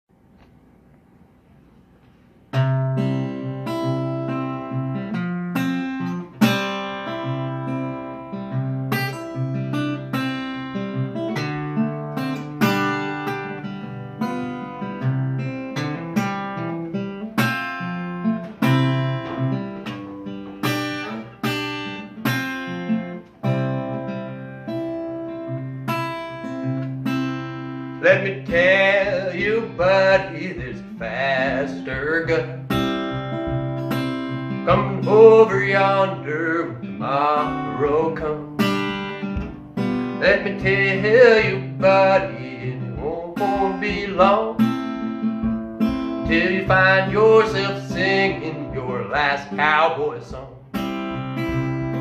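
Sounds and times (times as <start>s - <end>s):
solo acoustic guitar: 0.2s - 52.0s.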